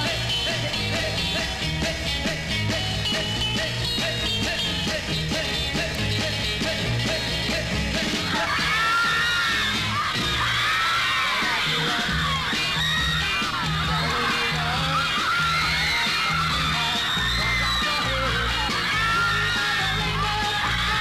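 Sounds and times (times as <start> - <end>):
beat-pop band music: 0.0 - 21.0
crowd screaming: 7.9 - 21.0.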